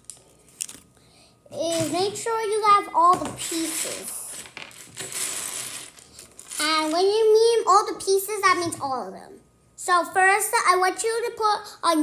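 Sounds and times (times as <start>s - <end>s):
plastic puzzle pieces clattering: 3.7s - 6.7s.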